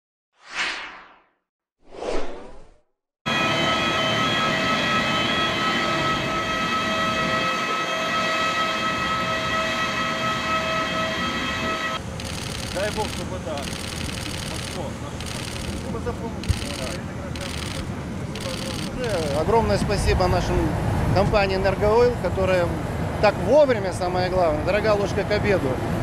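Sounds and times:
short whooshes: 0.4 - 2.9.

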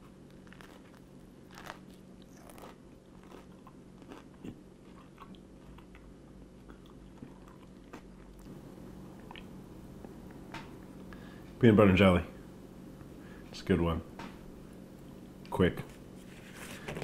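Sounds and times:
person chewing sandwich: 0.0 - 11.1
low steady hum: 0.0 - 17.0.

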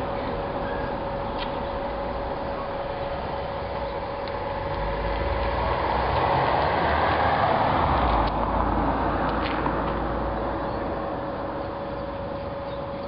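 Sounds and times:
car driving past: 4.7 - 10.4.

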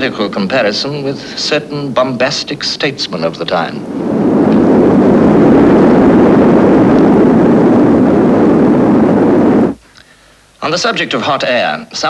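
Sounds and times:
volcanic eruption roar: 0.0 - 10.4.

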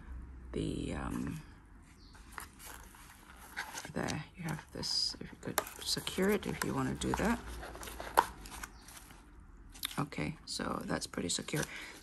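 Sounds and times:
foam packaging rustling: 5.4 - 9.3, 11.3 - 12.0.

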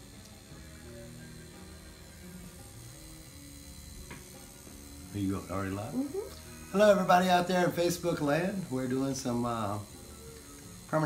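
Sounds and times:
faint background music: 0.0 - 11.0
tattoo machine humming: 0.0 - 11.0.

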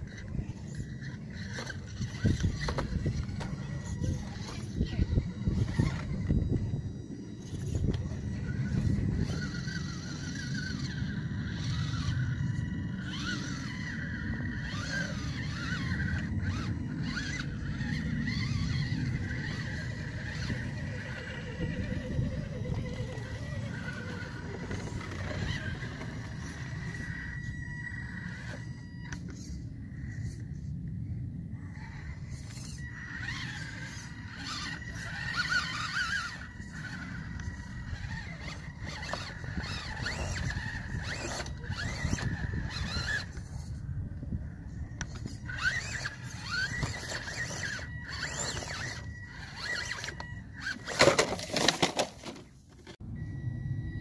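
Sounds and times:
rc car motor whining: 0.0 - 54.0
tyres scraping on stone: 45.1 - 52.9.

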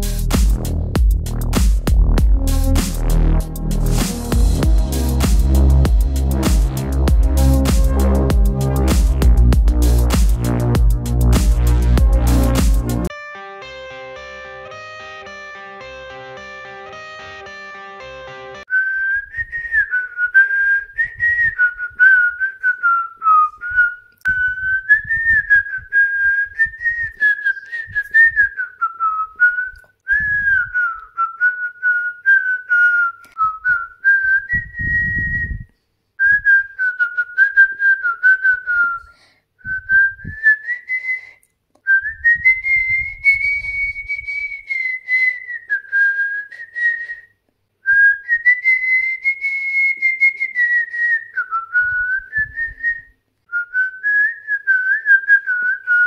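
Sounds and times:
low thumps: 0.0 - 13.1
person whistling melody: 0.0 - 56.0
guitar music: 2.5 - 18.6.

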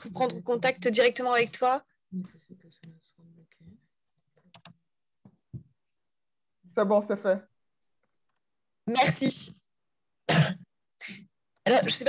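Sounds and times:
woman clearing her throat: 10.3 - 10.7.

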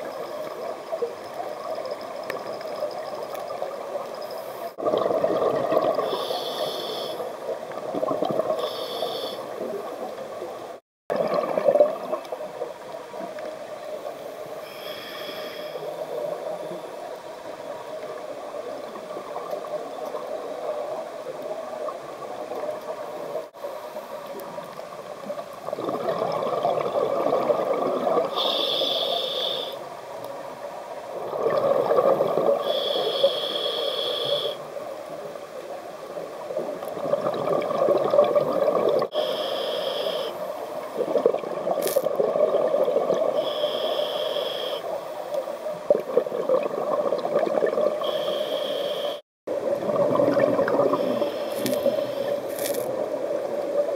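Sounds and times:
steady watery background: 0.0 - 53.9
diver breathing through regulator: 6.0 - 7.4, 8.6 - 9.6, 14.6 - 16.1, 28.3 - 29.8, 32.6 - 34.6, 39.1 - 40.6, 43.4 - 45.0, 48.0 - 49.2, 50.8 - 52.9.

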